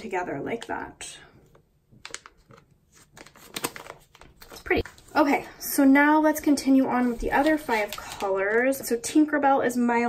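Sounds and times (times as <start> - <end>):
plastic pouch clicks and handling: 2.0 - 4.9.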